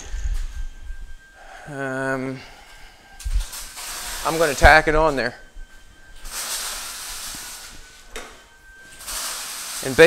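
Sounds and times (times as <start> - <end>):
steady hissing noise: 0.0 - 10.0.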